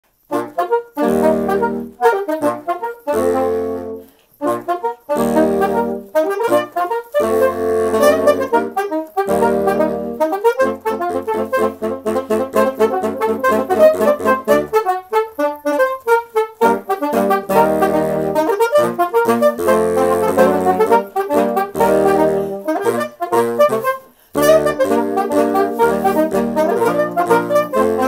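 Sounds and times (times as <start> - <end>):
saxophone ensemble playing: 0.2 - 28.0.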